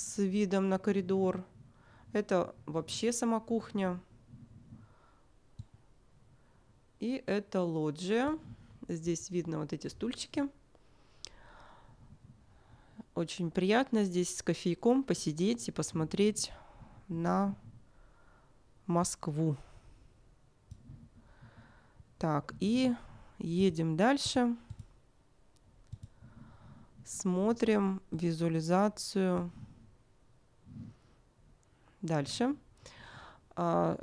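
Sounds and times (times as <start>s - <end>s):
faint breath: 1.6s - 2.1s, 4.6s - 5.4s, 10.8s - 13.1s, 16.5s - 17.1s, 17.8s - 18.7s, 19.6s - 20.2s, 20.9s - 22.1s, 26.1s - 27.0s, 32.8s - 33.5s
computer mouse clicks: 5.5s - 5.8s, 20.7s - 21.0s, 24.2s - 26.2s.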